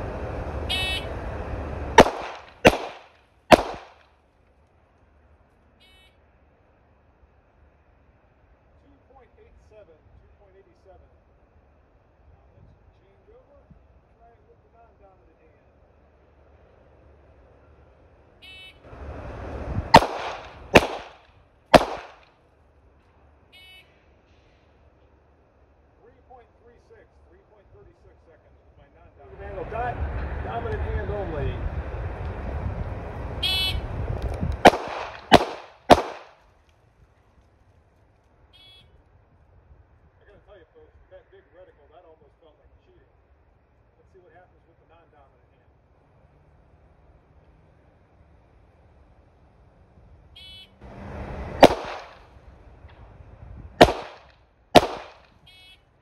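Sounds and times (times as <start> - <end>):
pistol shots: 2.0 - 4.0, 19.9 - 22.3, 34.6 - 36.4, 51.6 - 52.3, 53.8 - 55.4.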